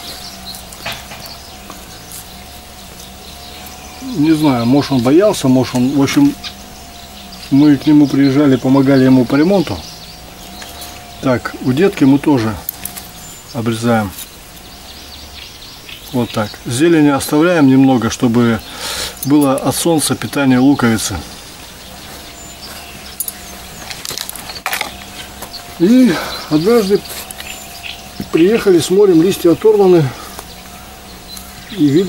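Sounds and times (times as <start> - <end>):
faint bird chirps: 0.0 - 32.0
insect buzzing: 0.0 - 32.0
low steady rumble: 0.0 - 32.0.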